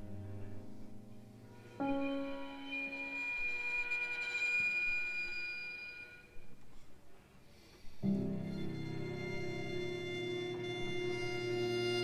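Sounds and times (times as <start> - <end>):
high sustained string tone: 0.0 - 6.5, 8.2 - 12.0.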